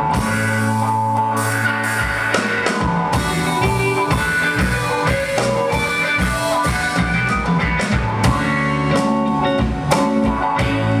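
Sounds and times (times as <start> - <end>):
electric guitars: 0.0 - 11.0
drum kit hits: 1.9 - 11.0.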